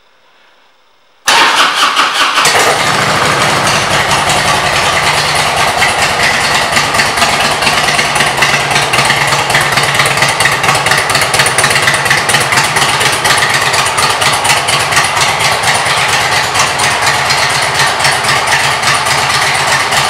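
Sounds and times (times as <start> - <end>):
motorcycle engine starting and idling: 1.2 - 20.0.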